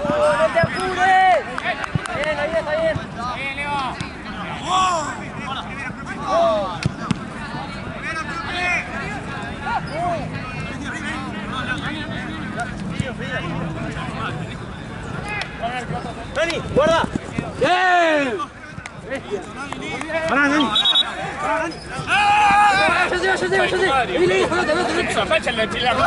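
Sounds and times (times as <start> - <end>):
crowd chatter: 0.0 - 26.0
ball being kicked: 6.8 - 7.3
people shouting short calls: 20.2 - 26.0.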